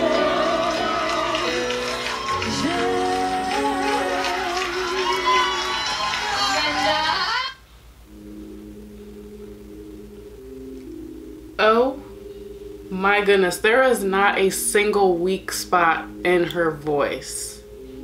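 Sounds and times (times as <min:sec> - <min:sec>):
woman singing ballad with band: 0:00.0 - 0:01.8, 0:02.4 - 0:05.7
quiet held chords: 0:00.0 - 0:06.9, 0:07.6 - 0:18.0.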